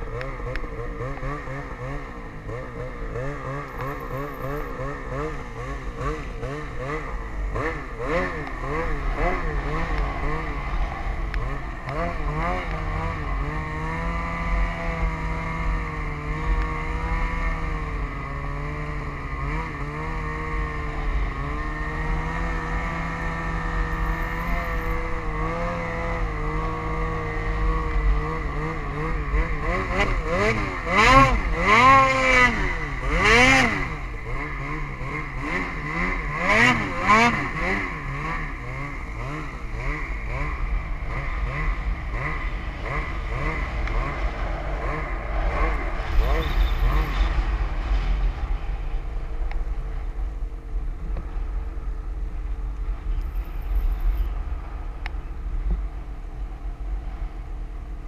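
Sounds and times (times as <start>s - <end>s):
vehicle engine revving: 0.0s - 51.9s.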